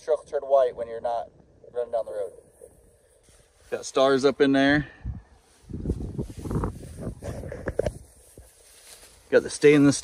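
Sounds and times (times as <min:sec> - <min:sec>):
footsteps through grass: 0:02.5 - 0:04.5, 0:05.3 - 0:10.0.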